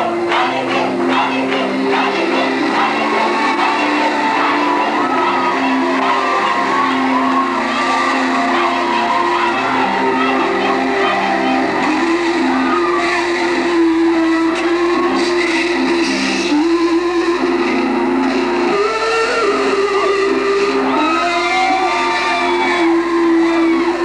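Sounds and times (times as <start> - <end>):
wavering melody: 0.0 - 21.1.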